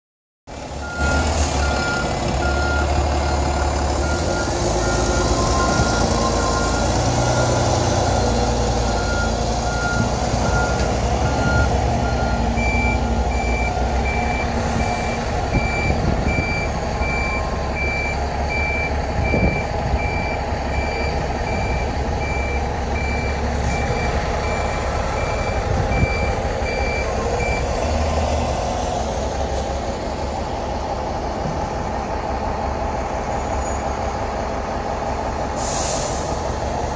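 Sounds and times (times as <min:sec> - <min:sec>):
bus engines running: 0:00.5 - 0:36.9
reversing alarms beeping: 0:00.8 - 0:27.9.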